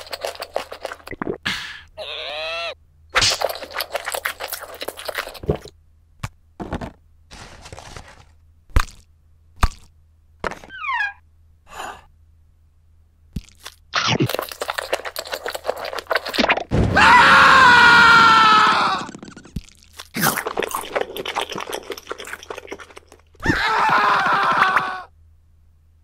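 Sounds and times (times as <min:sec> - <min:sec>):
crunchy biting and chewing: 0:00.0 - 0:01.1, 0:03.2 - 0:05.7, 0:08.7 - 0:09.9, 0:13.4 - 0:16.7, 0:18.6 - 0:23.5.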